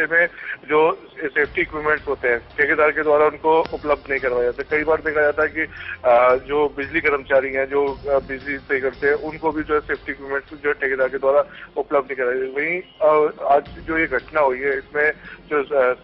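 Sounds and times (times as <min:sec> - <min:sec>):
man talking: 0:00.0 - 0:16.0.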